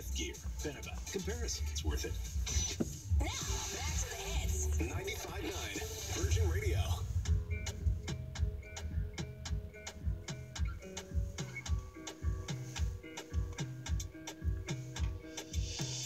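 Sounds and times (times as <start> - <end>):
music from car radio: 0.0 - 16.0
low kick drum thumps: 6.6 - 12.4.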